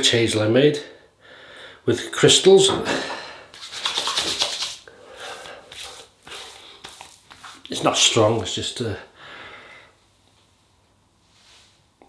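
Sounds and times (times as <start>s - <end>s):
hands patting face: 3.5s - 7.9s
hands rubbing skin: 3.5s - 8.1s.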